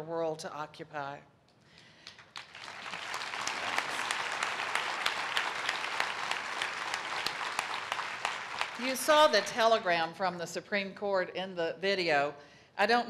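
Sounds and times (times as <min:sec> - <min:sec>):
audience applauding: 0:02.0 - 0:09.7.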